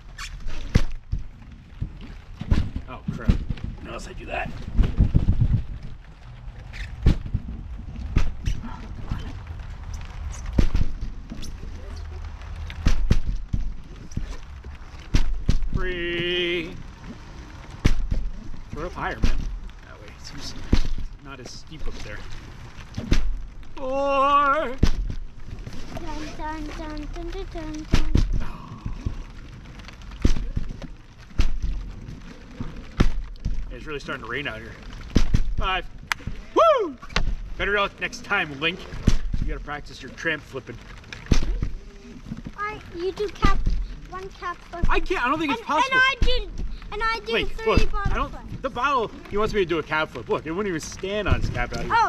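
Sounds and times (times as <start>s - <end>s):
low rumble from trampoline mat: 0.0s - 26.8s, 27.6s - 42.5s
water bottles thudding on trampoline: 0.0s - 27.0s, 27.6s - 42.6s, 43.2s - 49.8s
light rain patter: 0.0s - 52.0s
bottles thudding on trampoline: 0.2s - 3.8s, 10.4s - 11.6s, 12.7s - 14.4s, 17.7s - 19.6s, 24.7s - 25.4s, 30.2s - 31.8s, 35.0s - 37.6s.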